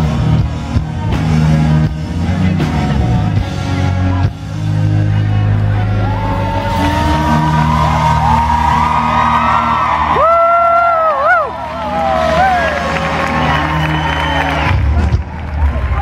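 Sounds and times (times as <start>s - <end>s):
country-rock band playing: 0.0s - 16.0s.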